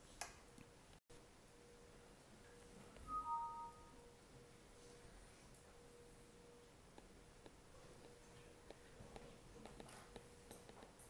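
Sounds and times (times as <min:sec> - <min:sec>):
faint steady hum: 0:00.0 - 0:11.0
two-note chime: 0:03.1 - 0:04.0.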